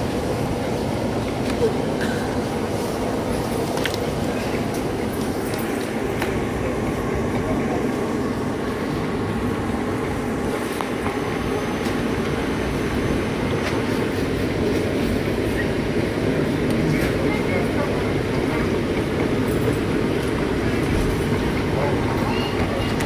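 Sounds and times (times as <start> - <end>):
low rumbling background noise: 0.0 - 23.0
faint voices: 0.3 - 12.3, 14.5 - 23.0.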